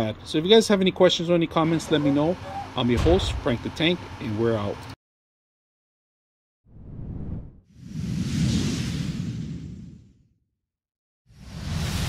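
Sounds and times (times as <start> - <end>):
whoosh: 6.7 - 10.3, 11.3 - 12.0.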